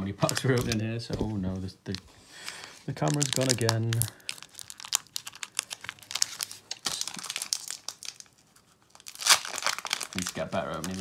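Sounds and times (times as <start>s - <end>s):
foil wrapper crinkling: 0.0s - 0.8s, 1.9s - 11.0s.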